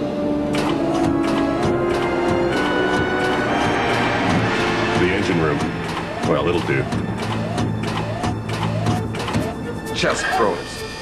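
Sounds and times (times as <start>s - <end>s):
sharp clicks: 0.5s - 10.4s
rising electronic chirps: 3.2s - 11.0s.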